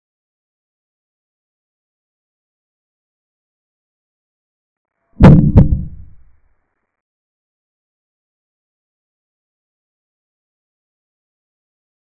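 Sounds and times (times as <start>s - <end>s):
sharp deep thuds: 5.2s - 6.2s.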